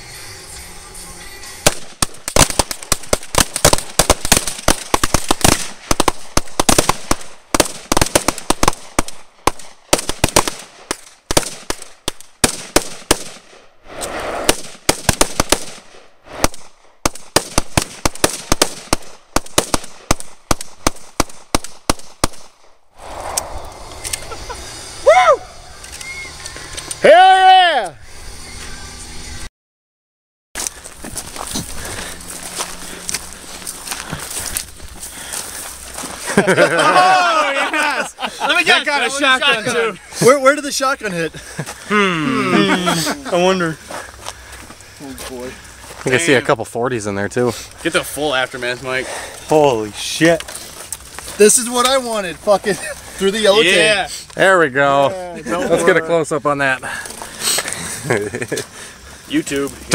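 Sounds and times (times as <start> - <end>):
rapid overlapping gunfire: 1.6 - 13.7, 14.4 - 22.7
rising and falling whoops: 23.4 - 28.0.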